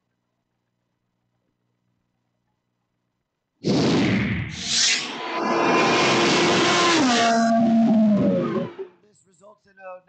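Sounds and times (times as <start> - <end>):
rushing noise: 3.7 - 8.9
race car engine passing: 4.7 - 8.9.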